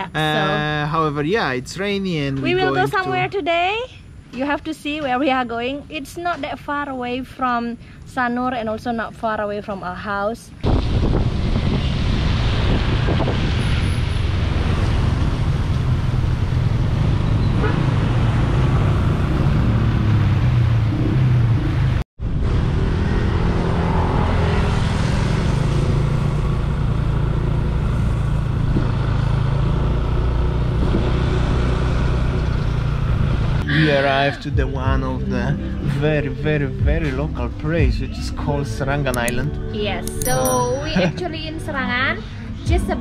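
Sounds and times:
wind rumble on microphone: 0:10.5 - 0:23.4, 0:24.2 - 0:29.3, 0:30.6 - 0:31.7
road noise on wet road: 0:10.7 - 0:34.9.

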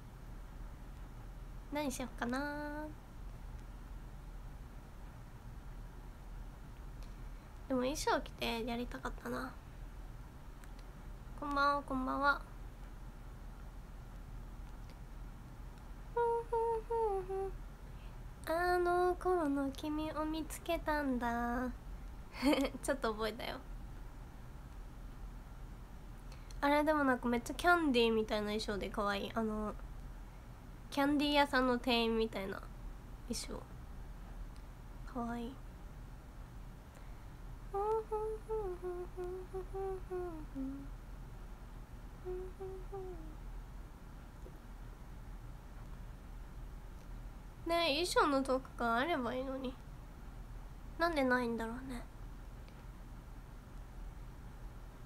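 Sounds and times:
young woman humming: 0:02.3 - 0:03.0, 0:16.1 - 0:17.6, 0:37.7 - 0:41.0, 0:42.2 - 0:43.4.

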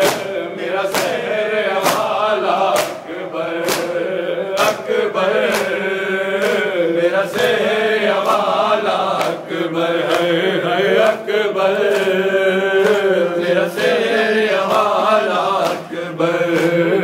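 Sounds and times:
hands slapping bare chests: 0:00.0 - 0:16.9
men chanting mournfully: 0:00.0 - 0:17.0.

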